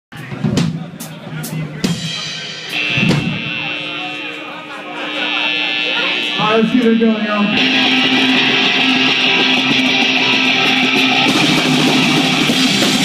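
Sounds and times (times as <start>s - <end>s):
drum kit hits: 0.1s - 3.6s, 7.6s - 13.0s
voices: 0.2s - 12.6s
high-pitched amplifier ringing: 2.6s - 13.0s.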